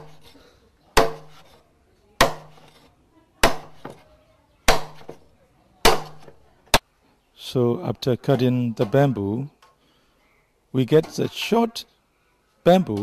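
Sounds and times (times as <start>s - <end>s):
blade chopping bamboo: 0.0s - 0.4s, 1.0s - 1.6s, 2.2s - 2.8s, 3.4s - 4.0s, 4.7s - 5.2s, 5.8s - 6.8s.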